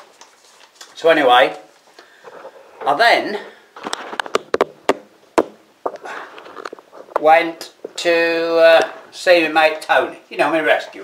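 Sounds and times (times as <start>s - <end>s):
camera handling taps and knocks: 3.9s - 6.0s.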